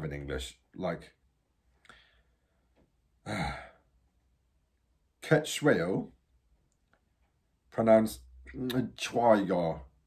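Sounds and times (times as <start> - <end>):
man sighing: 3.2 - 3.9.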